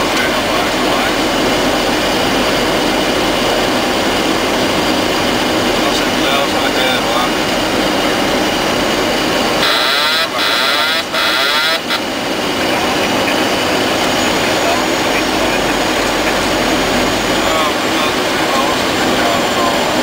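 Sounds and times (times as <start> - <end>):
jet engines: 0.0 - 20.0
voices: 0.0 - 20.0
harsh garbled sound: 9.6 - 12.0.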